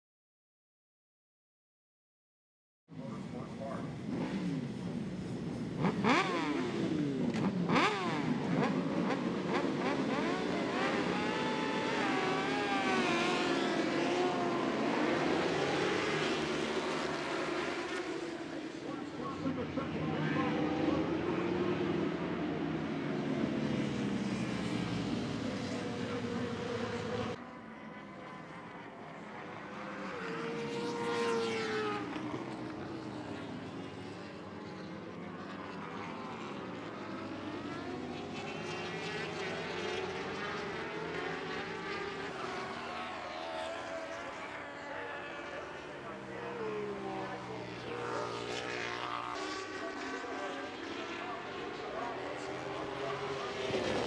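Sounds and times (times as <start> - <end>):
motorcycles passing by: 3.0 - 54.0
racing motorcycles revving: 3.0 - 54.0.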